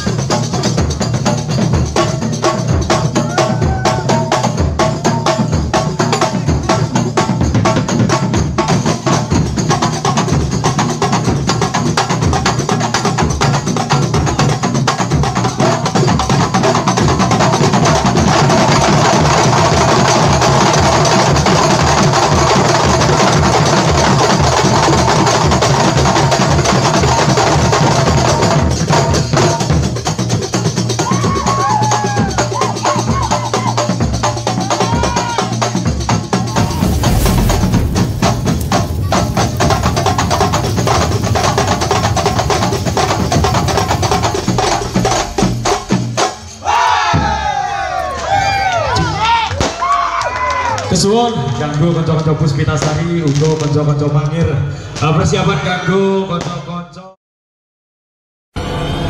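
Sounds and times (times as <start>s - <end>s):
frame drums beaten fast: 0.0s - 47.8s
frame drums clattering: 36.0s - 47.5s
low drum pulse: 36.4s - 46.4s.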